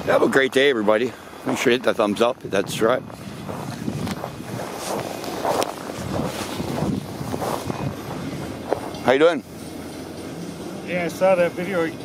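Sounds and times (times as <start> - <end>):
wind buffeting microphone: 1.2 - 9.3
footsteps crunching on snow: 2.8 - 9.1.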